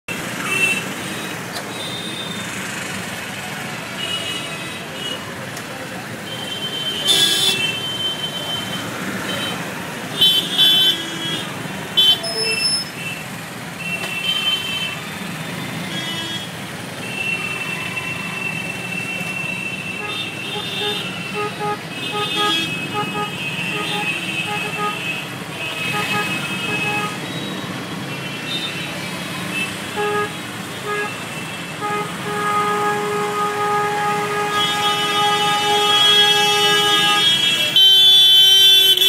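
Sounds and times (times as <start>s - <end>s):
road traffic engines: 0.0s - 39.0s
car horns honking: 6.2s - 13.2s, 13.8s - 39.0s.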